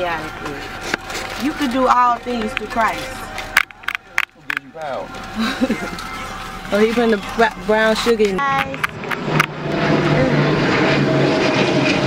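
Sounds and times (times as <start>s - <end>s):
jet airliner flying overhead: 4.4s - 12.0s.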